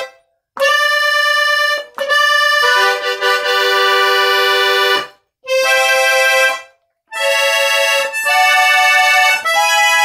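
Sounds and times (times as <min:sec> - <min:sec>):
accordion playing held chords: 0:00.0 - 0:10.0.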